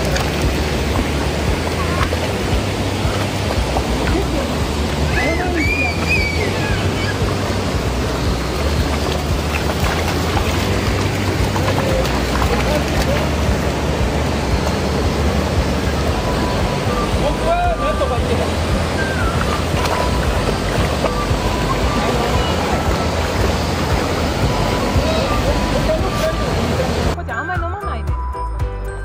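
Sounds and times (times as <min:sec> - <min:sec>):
river flowing over rocks: 0:00.0 - 0:27.2.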